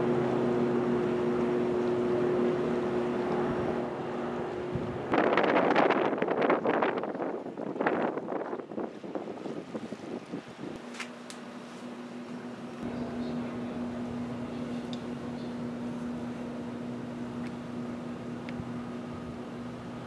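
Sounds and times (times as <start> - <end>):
wind buffeting microphone: 2.2 - 10.8
mechanical hum with two low tones: 10.8 - 20.0.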